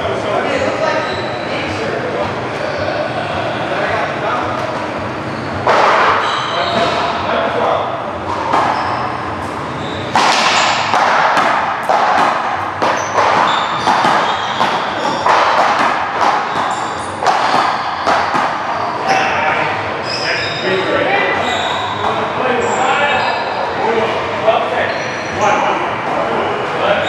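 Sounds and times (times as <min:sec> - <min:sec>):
ball smacking against wall: 0:10.2 - 0:18.6.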